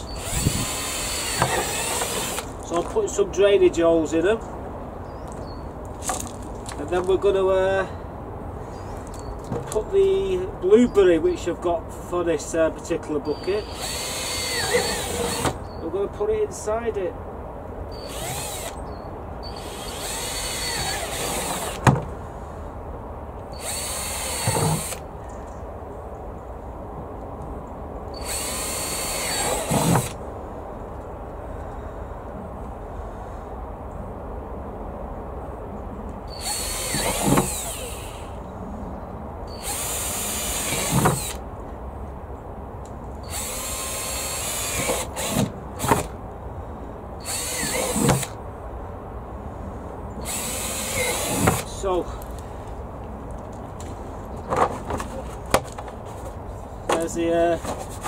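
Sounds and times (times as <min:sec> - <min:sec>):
cordless drill boring through plastic: 0:00.0 - 0:02.5, 0:13.4 - 0:15.6, 0:18.0 - 0:18.8, 0:19.5 - 0:21.8, 0:23.6 - 0:25.0, 0:28.2 - 0:30.2, 0:36.3 - 0:38.2, 0:39.6 - 0:41.4, 0:43.3 - 0:46.1, 0:47.2 - 0:48.4, 0:50.2 - 0:51.7.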